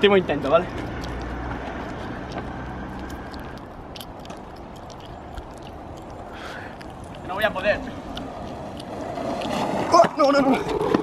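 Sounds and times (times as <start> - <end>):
longboard rolling on asphalt: 0.0 - 4.6, 6.9 - 11.0.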